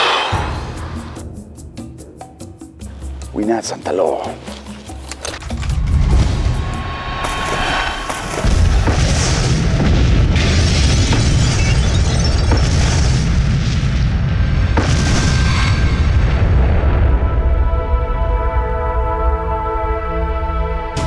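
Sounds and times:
music: 0:00.3 - 0:13.6, 0:14.2 - 0:21.0
explosion boom: 0:05.8 - 0:18.0.

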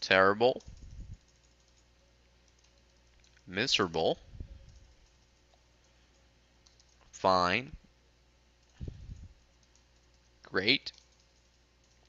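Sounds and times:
keyboard clicks: 0:00.6 - 0:03.4, 0:04.6 - 0:07.1, 0:08.6 - 0:12.0
person speaking: 0:03.4 - 0:04.8, 0:07.1 - 0:07.8, 0:10.4 - 0:11.0.

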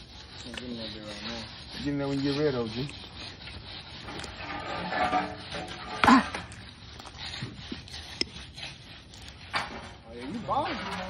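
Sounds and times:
broom scraping concrete: 0:00.0 - 0:11.0.

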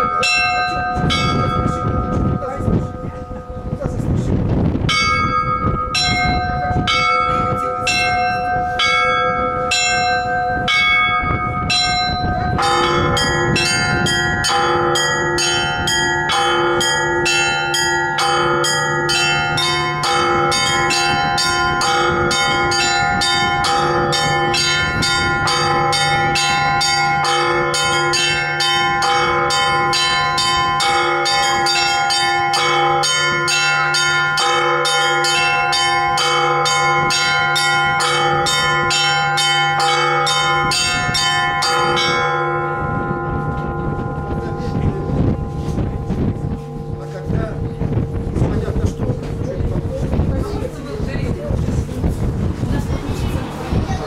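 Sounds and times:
deep steady bell tone: 0:00.0 - 0:52.8
single church bell struck: 0:04.8 - 0:50.1
small bells in quick rhythm: 0:04.9 - 0:50.7.

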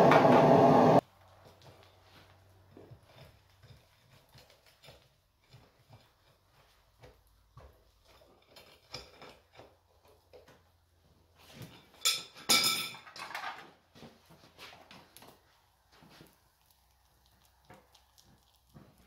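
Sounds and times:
metal tongs clanking on metal: 0:11.8 - 0:13.4.

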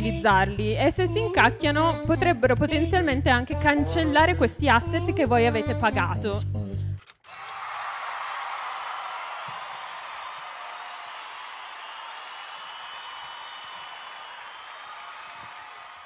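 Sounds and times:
audience applause: 0:07.3 - 0:16.0.

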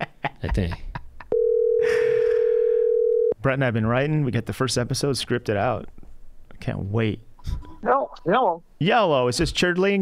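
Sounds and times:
telephone ringback tone: 0:01.3 - 0:03.4.

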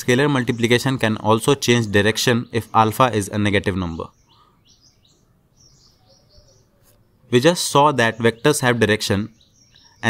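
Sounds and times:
faint high-pitched chirping: 0:00.0 - 0:10.0.

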